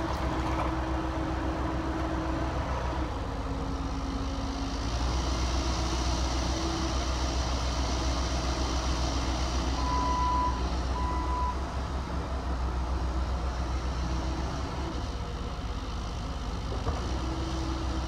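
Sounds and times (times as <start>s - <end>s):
diesel engine running: 0.0s - 18.0s.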